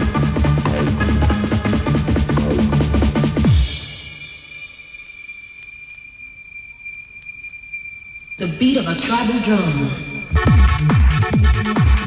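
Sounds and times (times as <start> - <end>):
high-pitched whine tones: 2.4 - 12.0.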